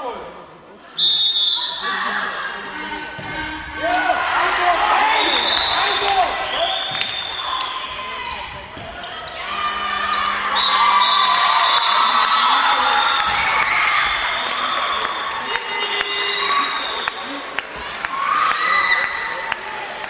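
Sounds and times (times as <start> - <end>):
players shouting and cheering: 1.5 - 20.0
ball bouncing on court: 3.2 - 3.6.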